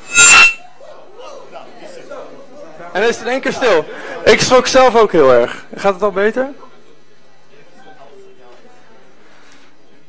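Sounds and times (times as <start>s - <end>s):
shrill ringing tone: 0.0s - 0.6s.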